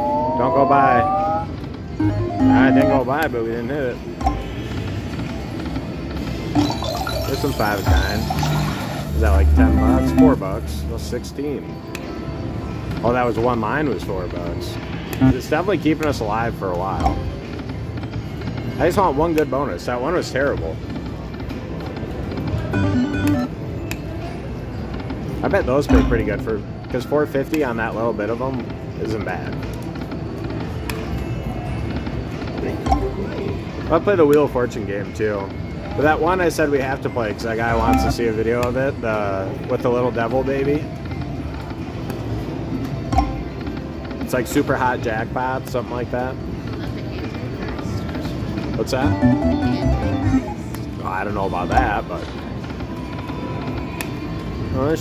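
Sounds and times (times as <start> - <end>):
slot machine electronic music: 0.0 - 11.3, 15.2 - 15.6, 22.7 - 23.8, 32.8 - 33.6, 37.7 - 38.4, 48.8 - 50.8
casino background din: 0.1 - 55.0
short stepped melody: 2.0 - 3.0, 49.0 - 50.7.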